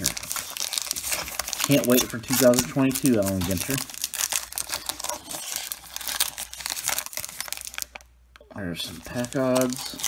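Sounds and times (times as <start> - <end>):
foil wrapper crinkling and tearing: 0.0 - 8.1, 8.8 - 10.0.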